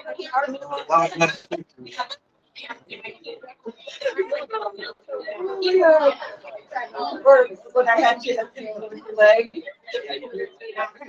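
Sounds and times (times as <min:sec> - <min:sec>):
people talking casually: 0:00.0 - 0:11.0
people laughing: 0:00.9 - 0:02.1.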